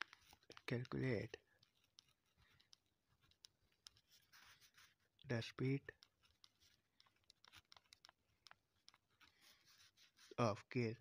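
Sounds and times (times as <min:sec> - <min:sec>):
pen scratching on paper: 0:00.2 - 0:05.1, 0:05.7 - 0:10.4
small ticks: 0:05.7 - 0:09.4.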